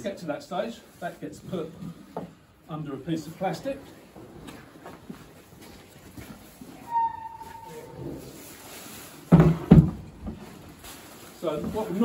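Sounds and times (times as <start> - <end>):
plastic sheet rustling thumps: 8.8 - 12.0.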